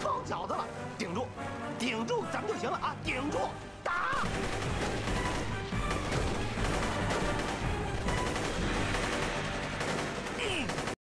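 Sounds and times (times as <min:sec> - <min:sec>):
rifles and machine guns firing: 0:04.1 - 0:11.0.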